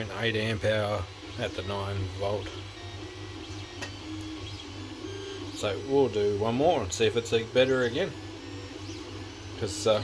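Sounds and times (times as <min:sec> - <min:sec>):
stepper motors whining: 0:00.0 - 0:10.0.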